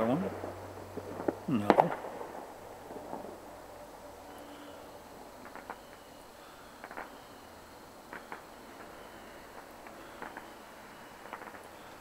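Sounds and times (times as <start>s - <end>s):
distant fireworks popping: 0.0s - 12.0s.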